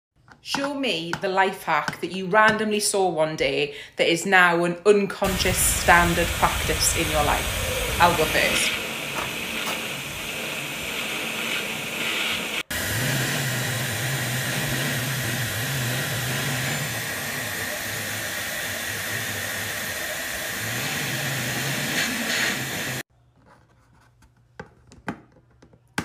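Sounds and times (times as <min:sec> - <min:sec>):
hair dryer blowing: 0:05.2 - 0:23.1.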